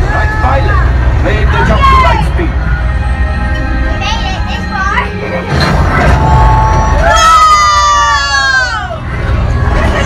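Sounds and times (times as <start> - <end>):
loud low rumble: 0.0 - 10.0
high wailing tone: 6.0 - 9.0.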